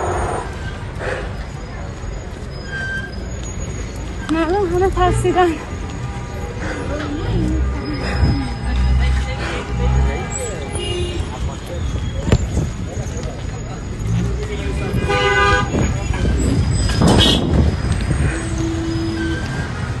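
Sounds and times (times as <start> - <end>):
voices: 0.0 - 16.8
traffic noise: 0.0 - 20.0
car horns honking: 4.8 - 11.5, 14.9 - 16.4, 17.0 - 17.6.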